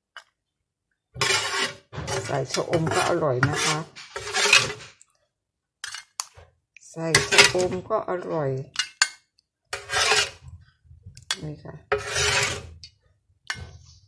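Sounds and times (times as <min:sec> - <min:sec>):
ladle scraping against a pan: 0:01.2 - 0:05.2, 0:07.1 - 0:07.9, 0:09.7 - 0:14.0.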